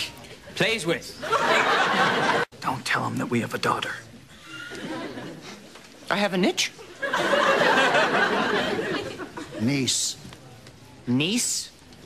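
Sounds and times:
dialogue: 0:00.0 - 0:12.0.

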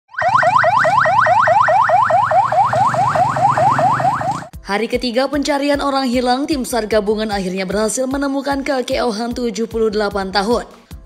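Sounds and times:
ambulance siren yelping: 0:00.1 - 0:04.5.

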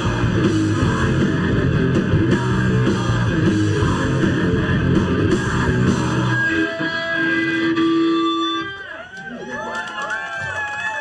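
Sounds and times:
crowd shouting and whooping: 0:06.3 - 0:11.0.

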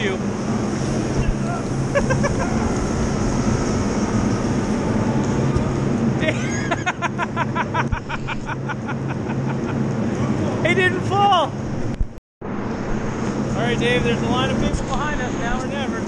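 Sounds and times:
low machinery hum: 0:00.0 - 0:16.0
voices: 0:13.5 - 0:16.0.

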